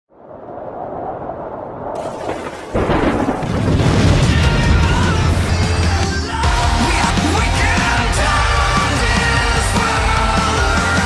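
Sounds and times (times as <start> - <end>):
loud explosion blast: 2.7 - 6.4
low rumble: 2.8 - 7.8.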